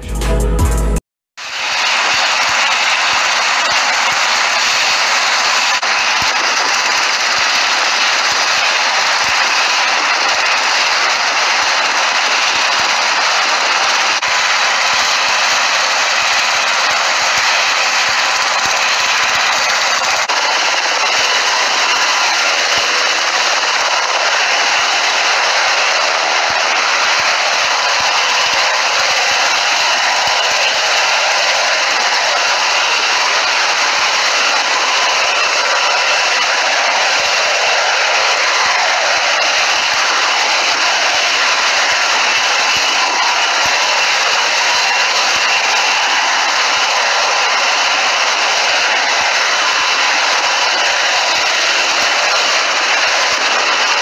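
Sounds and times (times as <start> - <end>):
fast rotor chop: 1.4 - 54.0
helicopter engine whine: 1.4 - 54.0.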